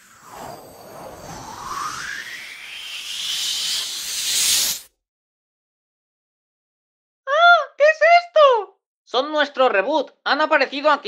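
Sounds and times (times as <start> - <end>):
rising hissing whoosh: 0.0 - 4.9.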